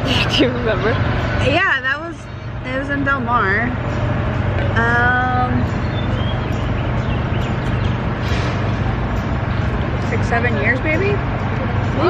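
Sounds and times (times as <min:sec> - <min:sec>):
constant low hum: 0:00.0 - 0:12.0
street traffic: 0:00.0 - 0:12.0.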